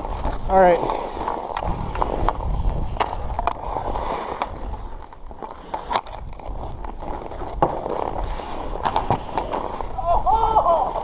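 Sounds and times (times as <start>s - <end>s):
ice skates scraping ice: 0.0s - 11.0s
hockey sticks clacking on puck: 4.2s - 9.8s.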